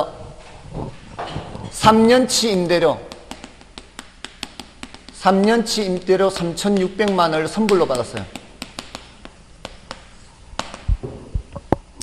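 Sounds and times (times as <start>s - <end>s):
chalk tapping on chalkboard: 3.0s - 11.0s.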